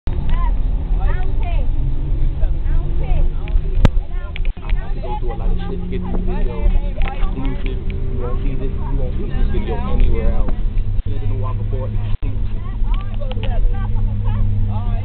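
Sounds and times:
road noise: 0.0s - 15.0s
bus engine rumble: 0.1s - 15.0s
children chattering: 0.2s - 15.0s.

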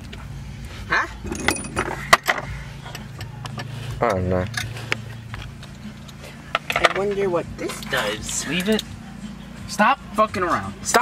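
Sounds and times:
steady low hum: 0.0s - 10.9s
small hard parts clinking: 1.2s - 8.9s.

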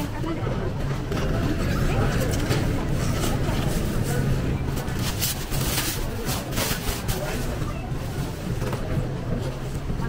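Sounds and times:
indistinct chatter of shoppers: 0.0s - 10.0s.

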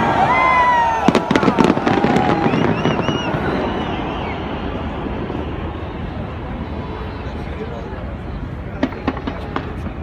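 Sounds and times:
fireworks crackling rumble: 0.0s - 10.0s
fireworks bangs: 0.6s - 6.4s, 8.7s - 10.0s.

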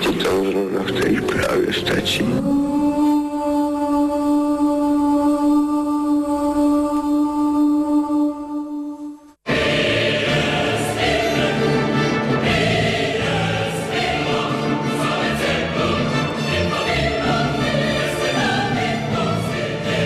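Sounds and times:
choir singing held notes: 1.4s - 20.0s.

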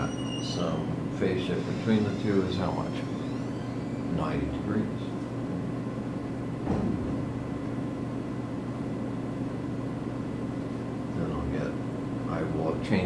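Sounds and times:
faint steady whine: 0.0s - 13.0s
low mechanical hum: 0.0s - 13.0s.

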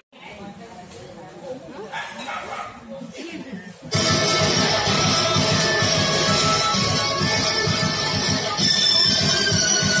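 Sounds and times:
faint indistinct talking: 0.1s - 4.1s.

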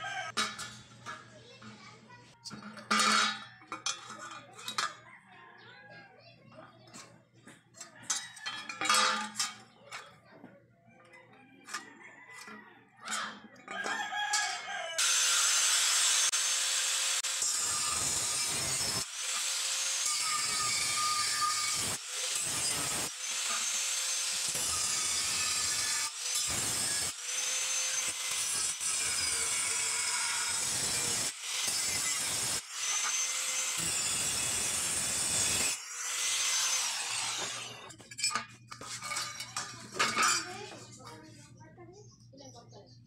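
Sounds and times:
angle grinder cutting steel: 8.1s - 9.6s, 13.1s - 40.7s.

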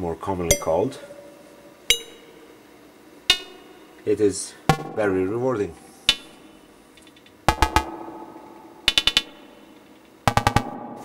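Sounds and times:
metallic synthesizer hits: 7.5s - 9.7s.

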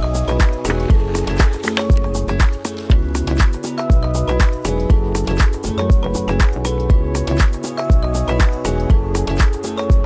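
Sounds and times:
background music with drum beat: 0.0s - 10.0s.

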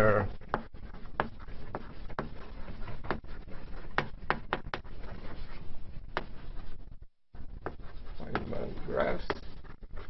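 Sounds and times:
chalk writing on blackboard: 0.2s - 6.8s, 7.4s - 10.0s
chalk taps: 0.3s - 6.7s, 7.4s - 10.0s.

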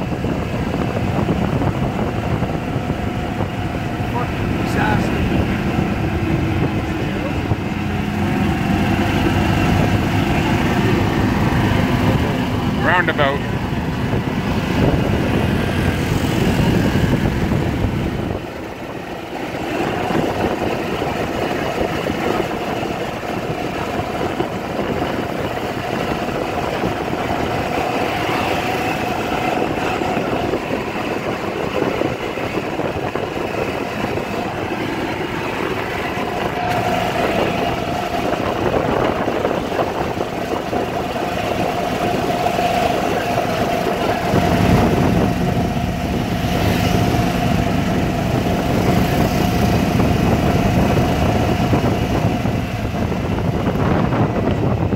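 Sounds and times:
golf cart motor: 0.0s - 54.7s
steady whine: 0.0s - 54.9s.

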